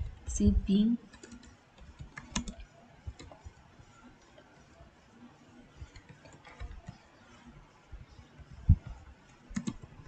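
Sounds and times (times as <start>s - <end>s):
computer keyboard typing: 1.0s - 3.6s, 5.8s - 7.4s, 9.5s - 10.0s.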